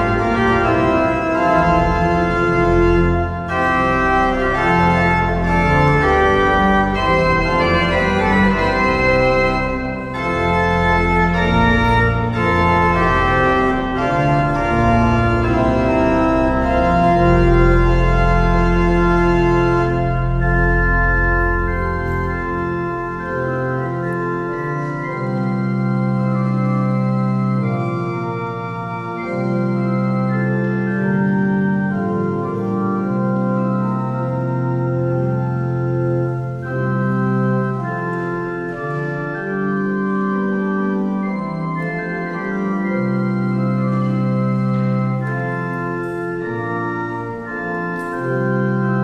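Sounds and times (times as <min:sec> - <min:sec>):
pipe organ playing a hymn: 0:00.0 - 0:49.0.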